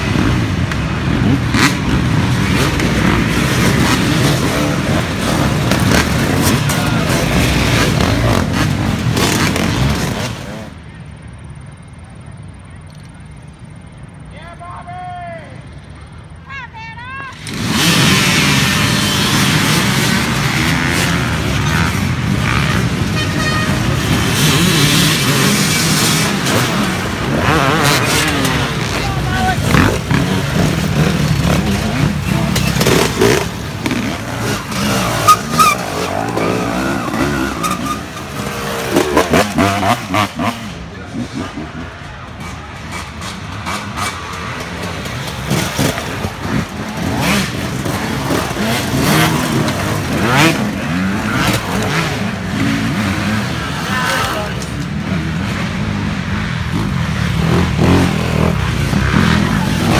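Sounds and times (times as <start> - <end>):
dirt bike engines revving past: 0.0 - 14.4, 17.0 - 59.9.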